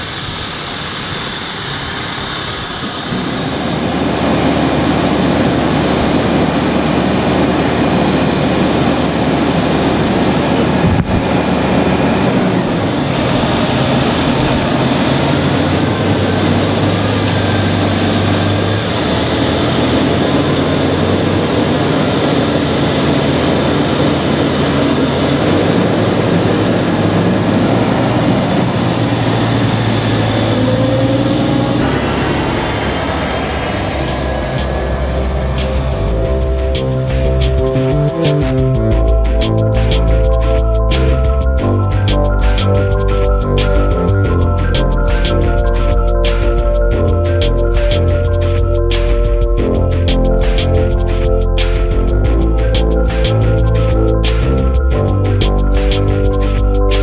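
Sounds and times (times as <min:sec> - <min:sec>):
tractor diesel engine running: 0:00.0 - 0:57.0.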